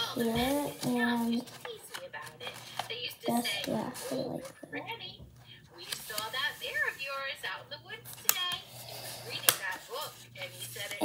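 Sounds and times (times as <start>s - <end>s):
paper being creased by hand: 3.3s - 4.6s.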